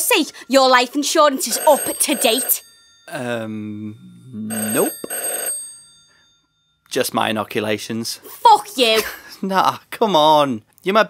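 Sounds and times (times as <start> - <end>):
telephone bell ringing: 0.1 - 3.6, 4.4 - 6.8.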